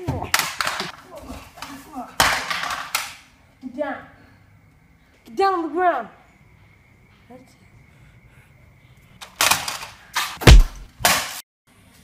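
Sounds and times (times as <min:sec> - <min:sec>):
gunshots: 0:10.4 - 0:10.9.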